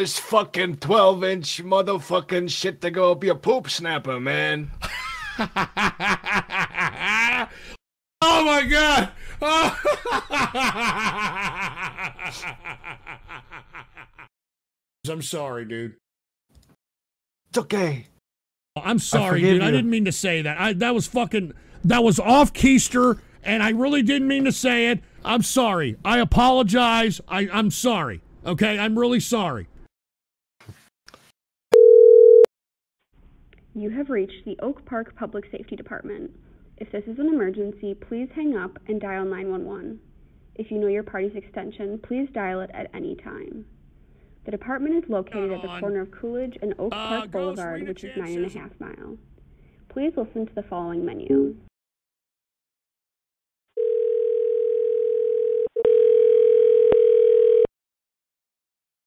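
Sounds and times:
electronic telephone tone: 31.7 - 32.5, 53.8 - 57.7.

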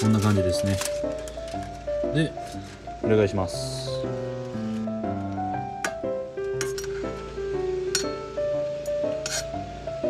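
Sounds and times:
background music with held notes: 0.0 - 10.0
metal spatula clinking on pan: 7.9 - 8.2.

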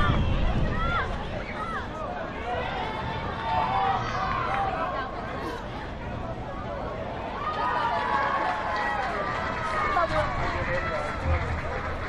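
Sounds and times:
voices calling out and talking: 0.0 - 12.0.

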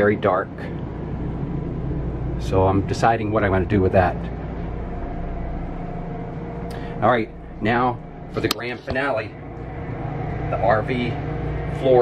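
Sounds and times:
low mechanical hum with whine: 0.0 - 12.0.

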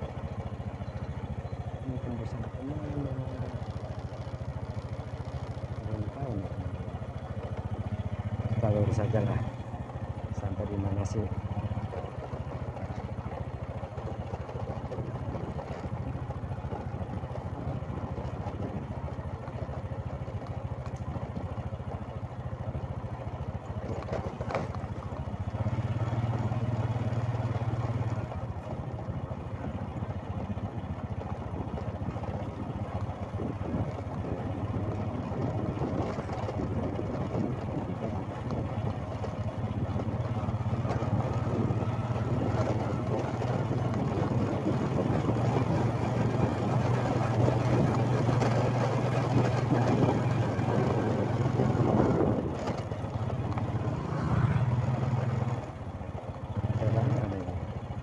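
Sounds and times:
road and wind noise: 0.0 - 58.0
small motorcycle engine: 0.0 - 58.0.

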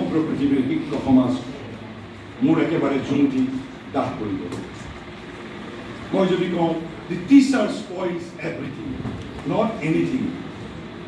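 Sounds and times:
man speaking into a microphone: 0.0 - 1.7, 2.4 - 4.7, 6.1 - 10.4
steady background noise: 0.0 - 11.0.

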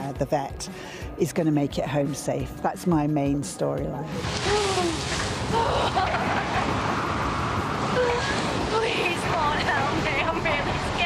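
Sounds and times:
loud storm rushing: 4.2 - 11.0.

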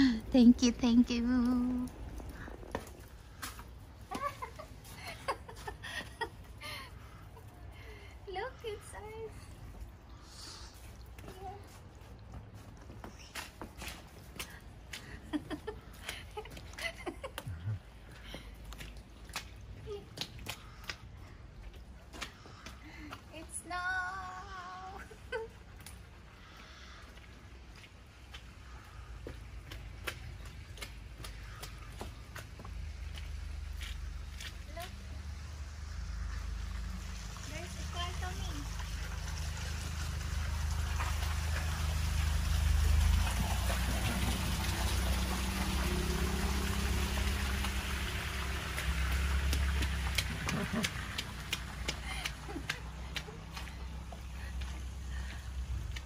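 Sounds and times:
tyres hissing through slush: 10.0 - 11.1.

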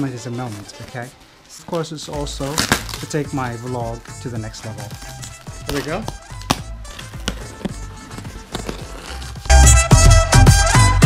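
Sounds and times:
plastic wrapping rustling: 0.0 - 9.6
cardboard box being opened: 4.7 - 9.6
loud music with a beat: 9.4 - 11.0.

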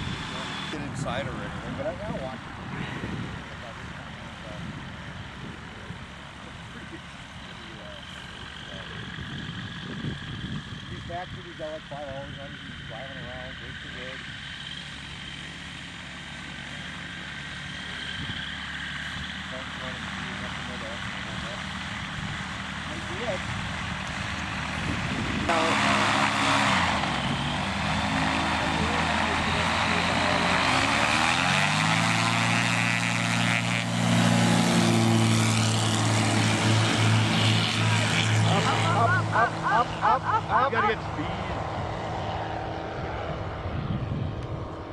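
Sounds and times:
airplane piston engine and propeller: 0.0 - 44.9.

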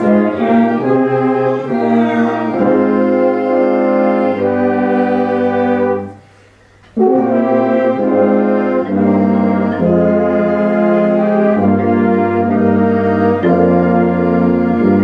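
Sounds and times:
brass chords: 0.0 - 15.0
wind ensemble playing held chords: 0.0 - 15.0.

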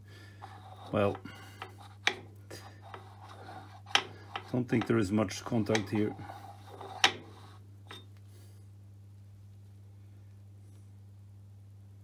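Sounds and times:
metal sliding on metal: 0.3 - 8.6.

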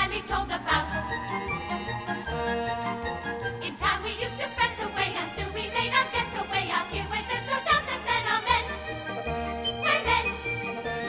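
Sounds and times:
orchestra playing: 0.9 - 11.0.

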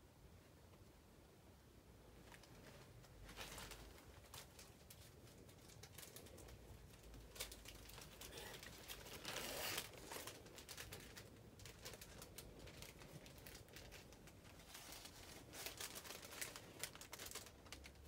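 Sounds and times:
faint rustling: 2.0 - 18.0.

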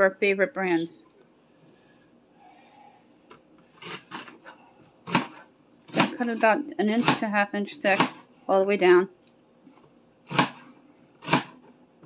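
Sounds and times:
celery scraping on cutting board: 3.7 - 7.2
knife cutting celery: 3.7 - 8.3, 10.2 - 11.7.

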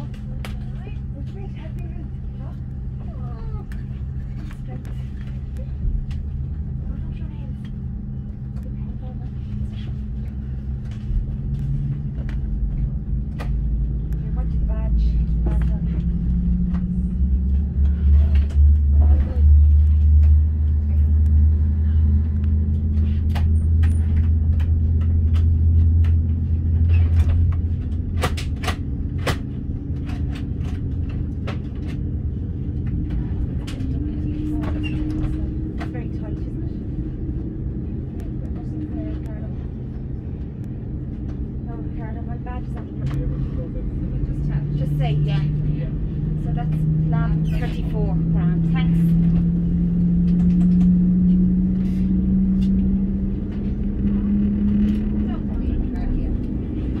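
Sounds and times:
aircraft engine hum and rumble: 0.0 - 57.0.

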